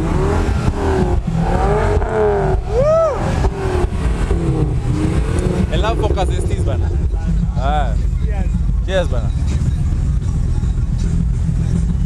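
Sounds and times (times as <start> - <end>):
car engine revving: 0.0 - 12.0.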